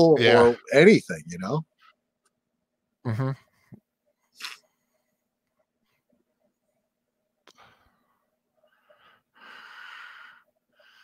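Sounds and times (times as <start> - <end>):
person breathing noisily: 8.8 - 11.0.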